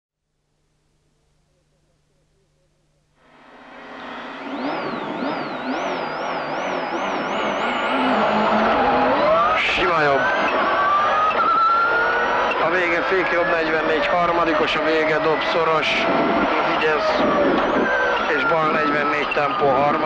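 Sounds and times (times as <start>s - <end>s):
rally car engine revving: 3.3s - 20.0s.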